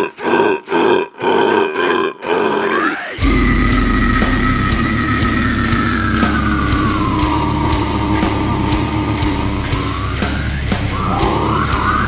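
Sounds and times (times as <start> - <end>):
harsh growled vocals: 0.0 - 12.0
heavy guitars and drums: 3.2 - 12.0.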